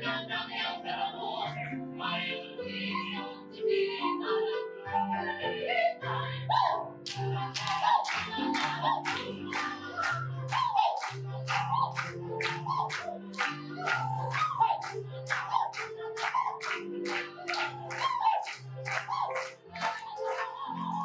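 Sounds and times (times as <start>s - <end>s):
low musical accompaniment: 0.0s - 21.0s
women singing in unison: 0.0s - 21.0s
sharp clap-like beat: 7.1s - 20.4s.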